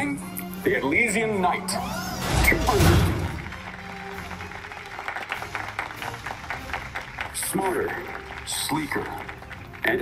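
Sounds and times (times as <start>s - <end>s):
background music: 0.0s - 10.0s
crowd clapping: 3.0s - 10.0s.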